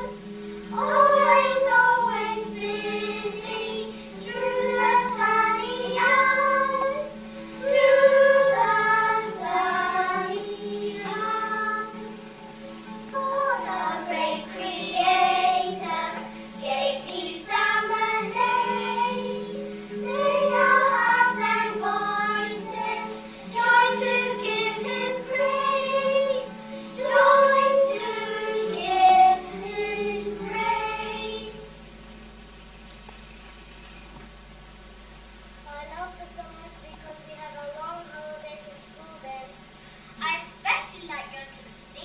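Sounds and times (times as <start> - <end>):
children singing together: 0.0 - 31.8.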